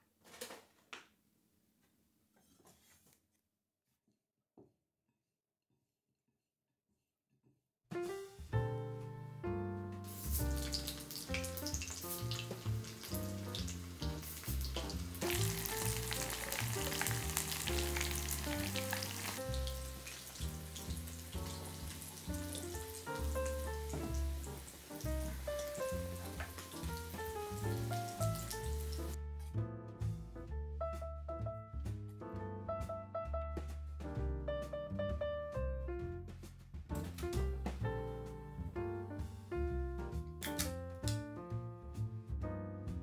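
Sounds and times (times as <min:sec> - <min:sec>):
background piano music: 0:07.9 - 0:43.0
fish sizzling in oil: 0:10.1 - 0:29.2.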